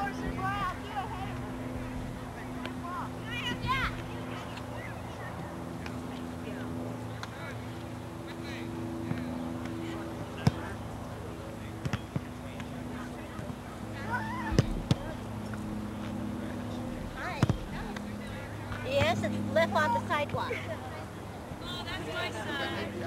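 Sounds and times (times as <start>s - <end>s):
distant voices: 0.0s - 23.0s
steady low hum: 0.0s - 23.0s.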